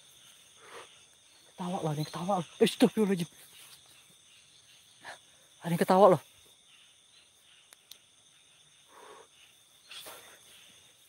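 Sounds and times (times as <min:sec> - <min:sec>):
crickets chirring: 0:00.0 - 0:11.0
small clicks: 0:07.7 - 0:08.0.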